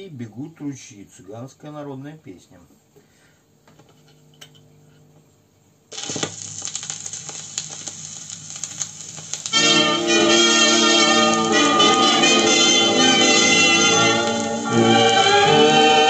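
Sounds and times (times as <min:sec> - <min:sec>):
faint hum: 0:00.0 - 0:16.0
slow foxtrot from record player: 0:03.6 - 0:16.0
record crackle and pops: 0:05.2 - 0:16.0.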